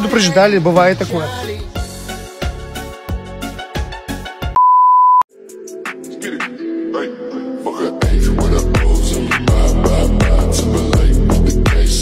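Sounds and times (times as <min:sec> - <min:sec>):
electronic censor bleep: 0:04.6 - 0:05.3
background music with beat: 0:05.3 - 0:06.9, 0:07.8 - 0:12.0.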